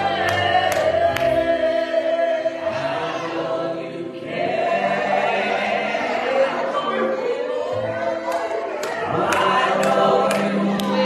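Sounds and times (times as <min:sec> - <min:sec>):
keyboard accompaniment: 0:00.0 - 0:11.0
vocal group singing: 0:00.0 - 0:11.0.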